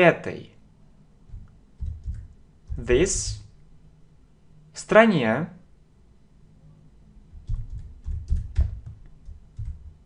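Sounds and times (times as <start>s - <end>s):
typing on computer keyboard: 1.3s - 3.1s, 7.4s - 10.0s.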